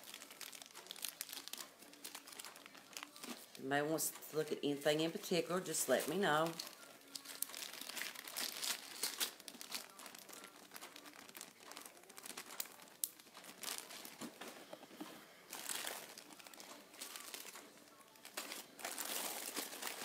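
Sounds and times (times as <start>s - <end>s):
plastic wrapping crinkling: 0.0s - 20.0s.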